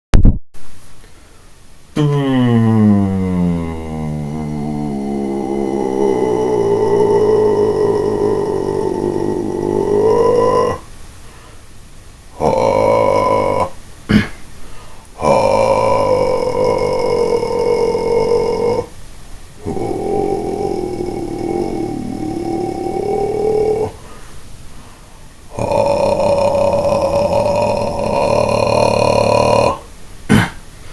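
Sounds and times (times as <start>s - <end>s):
person singing low sustained notes: 2.0s - 10.9s, 12.3s - 14.2s, 15.2s - 18.9s, 19.6s - 24.3s, 25.5s - 30.5s.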